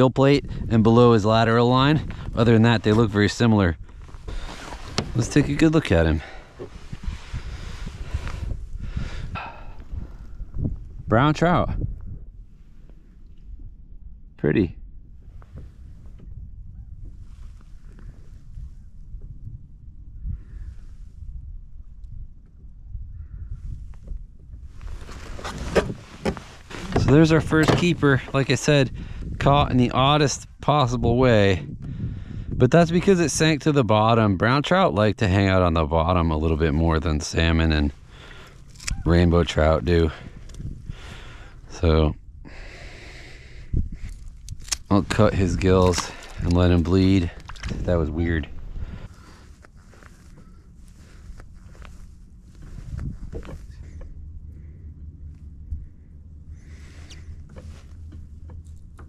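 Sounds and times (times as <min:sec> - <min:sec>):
wind and water rumble: 0:00.0 - 0:59.0
man speaking: 0:05.2 - 0:06.3, 0:14.4 - 0:14.8, 0:26.8 - 0:28.8, 0:32.6 - 0:38.0, 0:39.0 - 0:40.2, 0:41.7 - 0:42.2, 0:44.9 - 0:48.6.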